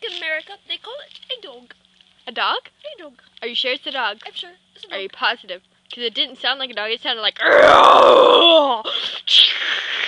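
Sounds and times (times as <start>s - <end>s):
girl groaning imitation: 7.4s - 9.8s.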